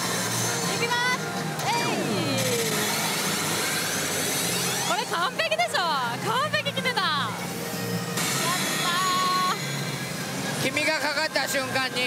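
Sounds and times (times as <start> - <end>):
pachinko hall din: 0.0 - 12.0.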